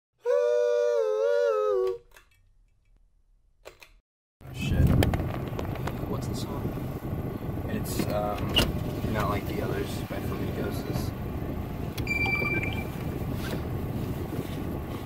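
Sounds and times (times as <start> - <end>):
car interior rumble: 4.4 - 15.0.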